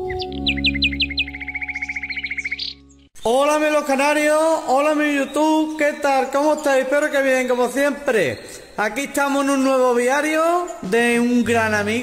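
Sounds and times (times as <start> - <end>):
held musical chord: 0.0 - 3.1
canary singing: 0.0 - 3.6, 4.2 - 12.0.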